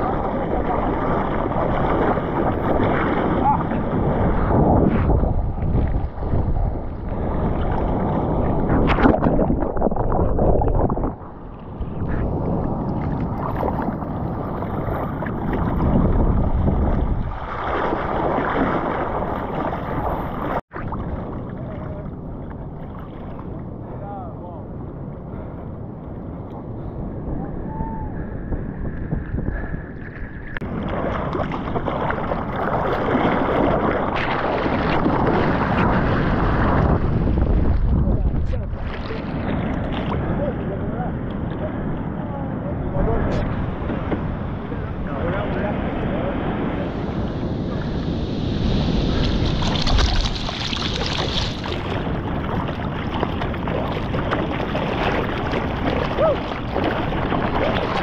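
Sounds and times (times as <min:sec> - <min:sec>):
sea water sloshing and splashing: 0:00.0 - 0:23.9, 0:29.6 - 0:40.5, 0:47.7 - 0:58.0
wind on microphone: 0:00.0 - 0:58.0.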